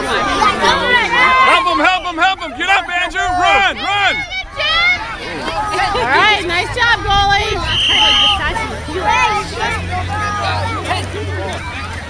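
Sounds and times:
babble of spectator voices: 0:00.0 - 0:12.0.

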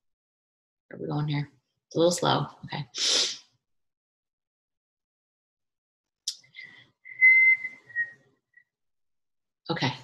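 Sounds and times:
person whistling: 0:07.0 - 0:08.7.

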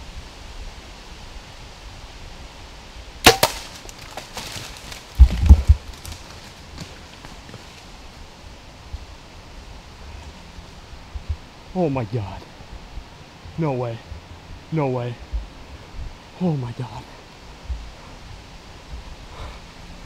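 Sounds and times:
bow shot sharp cracks: 0:03.2 - 0:04.8
heavy low thuds: 0:05.1 - 0:06.1, 0:17.5 - 0:19.3.

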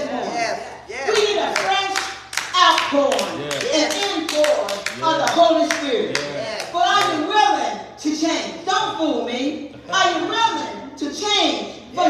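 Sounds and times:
voices speaking: 0:00.0 - 0:12.0
hand clapping: 0:01.1 - 0:07.2.

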